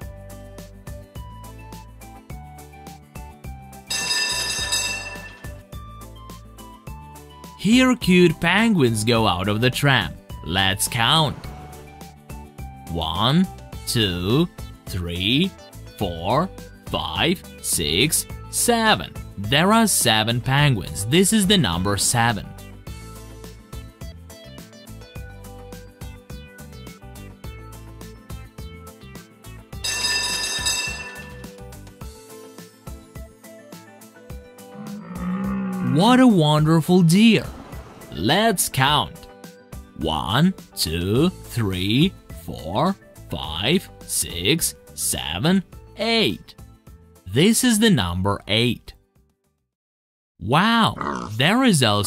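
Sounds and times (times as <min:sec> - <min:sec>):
background music with steady beat: 0:00.0 - 0:36.4, 0:38.1 - 0:47.9
bell-like tram sound effect: 0:03.9 - 0:05.6, 0:29.9 - 0:31.4.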